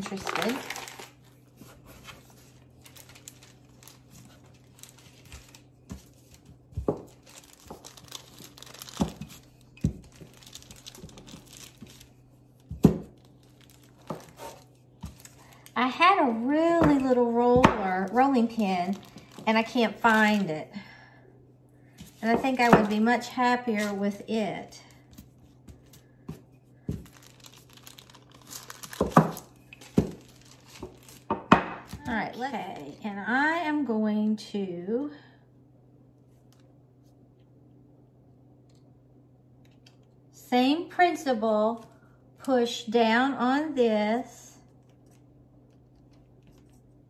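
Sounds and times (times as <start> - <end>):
paper crinkling and rustling: 0.0 - 15.8, 18.0 - 20.5, 25.1 - 33.0, 44.7 - 47.0.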